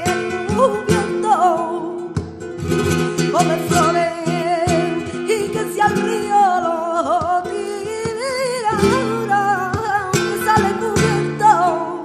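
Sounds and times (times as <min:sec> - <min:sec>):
flamenco guitar: 0:00.0 - 0:12.0
woman singing flamenco: 0:00.0 - 0:12.0.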